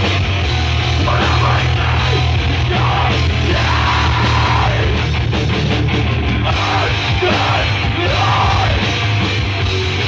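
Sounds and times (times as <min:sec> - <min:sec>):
heavy rock band playing: 0:00.0 - 0:10.0
singer yelling: 0:00.9 - 0:05.2, 0:06.3 - 0:09.2.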